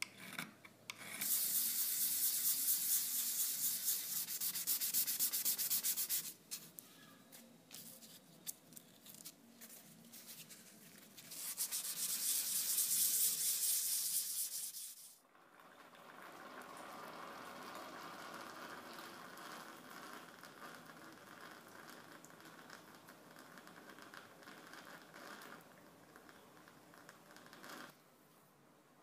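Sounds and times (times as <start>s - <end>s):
quiet steady hiss: 0.0s - 29.0s
metal rubbed on sandpaper: 1.2s - 6.7s, 10.1s - 15.2s.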